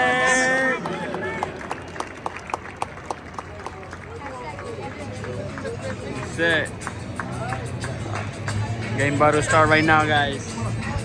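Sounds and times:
crowd chatter: 0.0 - 11.0
music playing: 3.7 - 11.0.

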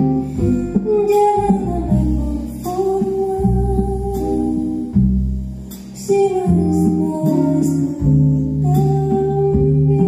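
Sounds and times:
double bass: 0.0 - 10.0
guitar chords: 0.0 - 10.0.

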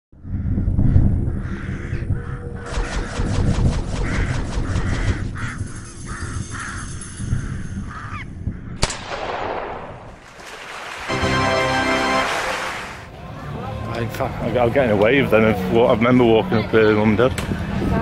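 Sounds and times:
deep rumbling: 0.2 - 6.8
crow cawing: 1.3 - 3.3, 4.0 - 8.3.

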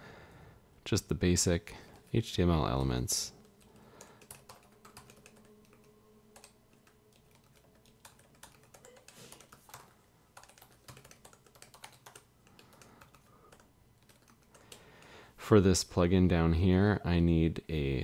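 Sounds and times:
typing on computer keyboard: 3.4 - 15.1.

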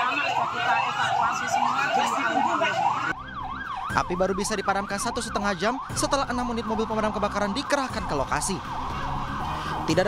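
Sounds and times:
fire truck siren wailing: 0.0 - 10.0.

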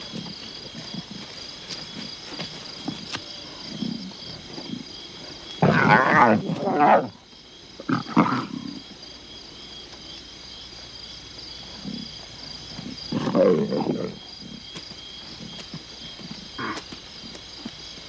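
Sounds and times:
young lions snarling and growling: 0.0 - 9.0, 11.6 - 16.9
insects trilling: 0.0 - 18.0.

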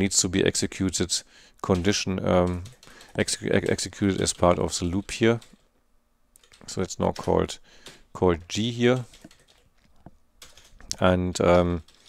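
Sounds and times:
computer keyboard keystrokes: 1.6 - 5.6, 6.4 - 8.0, 8.9 - 9.7, 10.4 - 11.0.

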